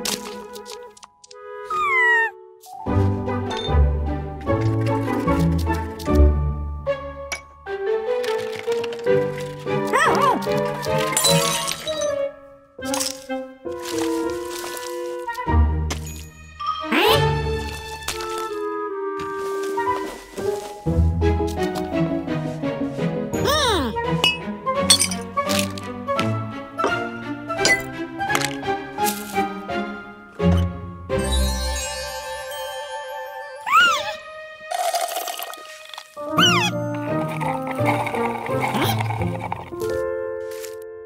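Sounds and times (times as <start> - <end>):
cartoon background music: 0.0 - 41.0
bouncy cartoon tune: 23.4 - 25.4, 36.2 - 39.4.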